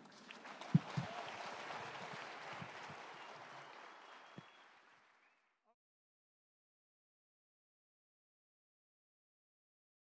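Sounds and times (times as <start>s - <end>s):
audience applauding: 0.0s - 5.5s.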